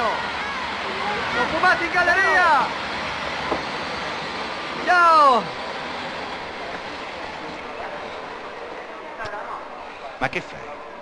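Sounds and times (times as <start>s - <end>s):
train pulling out: 0.0s - 11.0s.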